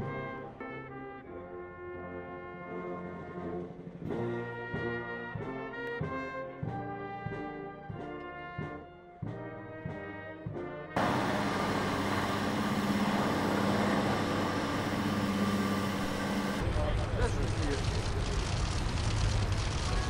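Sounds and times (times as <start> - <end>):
brass band music: 11.0 - 16.6
engine noise with low hum: 11.0 - 20.0.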